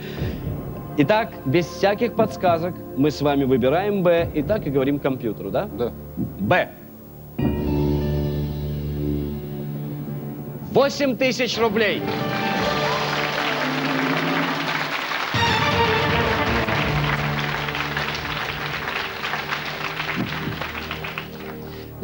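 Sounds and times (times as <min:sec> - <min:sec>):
game-show music cue: 0:11.6 - 0:21.8
studio audience applause: 0:12.0 - 0:22.0.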